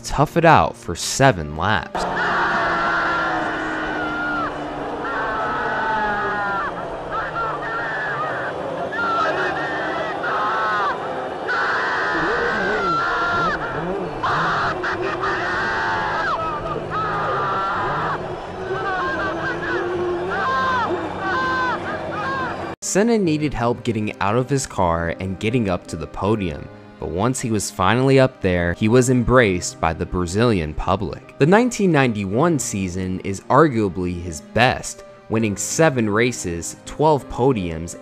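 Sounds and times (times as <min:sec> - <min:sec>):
man yelling over radio: 0:01.9 - 0:10.5, 0:12.1 - 0:22.7
low engine note: 0:02.0 - 0:09.4.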